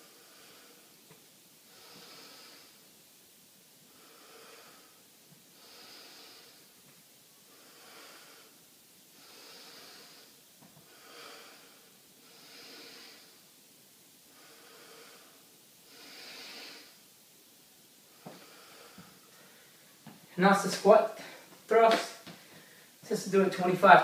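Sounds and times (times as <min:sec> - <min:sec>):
man breathing through nose: 0:01.7 - 0:02.8, 0:03.9 - 0:06.8, 0:07.5 - 0:13.5, 0:14.3 - 0:17.0, 0:18.1 - 0:19.8, 0:22.4 - 0:23.0.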